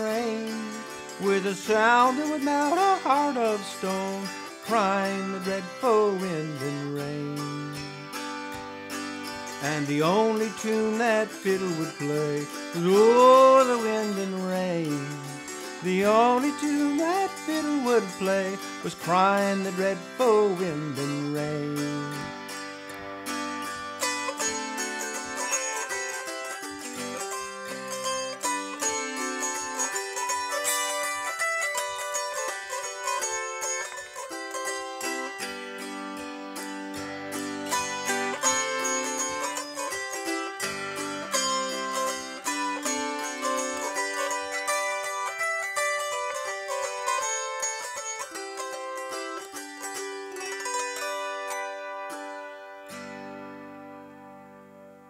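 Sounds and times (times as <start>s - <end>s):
autoharp playing: 0.0s - 55.0s.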